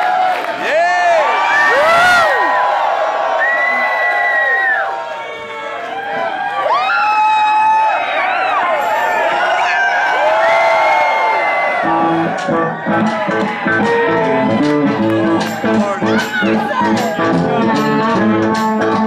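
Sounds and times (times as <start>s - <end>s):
concert crowd cheering: 0.0s - 19.0s.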